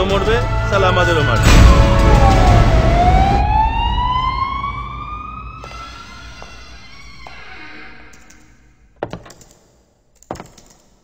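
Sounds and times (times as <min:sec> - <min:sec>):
siren-like rising tone: 0:00.1 - 0:08.2.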